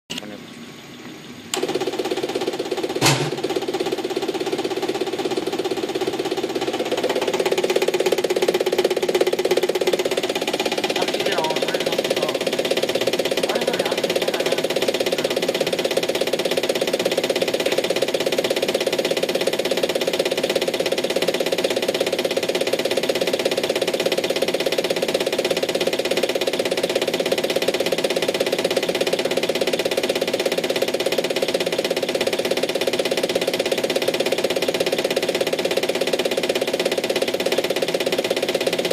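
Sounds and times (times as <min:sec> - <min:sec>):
fuel injector ticking: 0:01.5 - 0:38.9
high-pressure pump whirring: 0:01.5 - 0:38.9.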